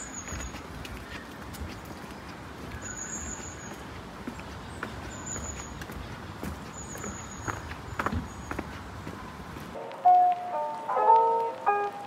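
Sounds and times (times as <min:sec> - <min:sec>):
footsteps on wooden boards: 0:00.0 - 0:09.8
outdoor background hiss: 0:00.0 - 0:12.0.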